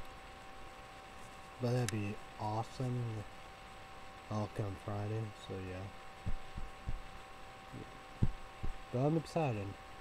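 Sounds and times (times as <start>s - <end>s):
faint electrical hum: 0.0s - 10.0s
soft low thumps: 6.2s - 7.2s, 7.8s - 8.9s.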